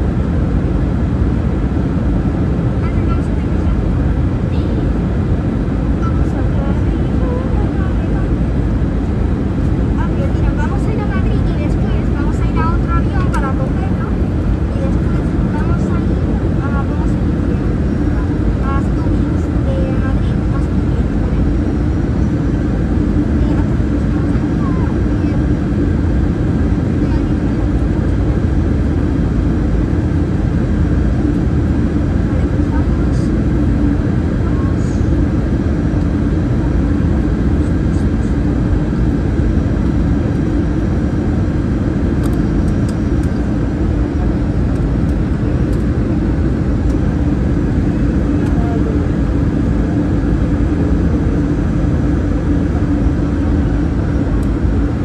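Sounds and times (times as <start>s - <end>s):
jet engines rumbling: 0.0s - 55.0s
low hum: 0.0s - 55.0s.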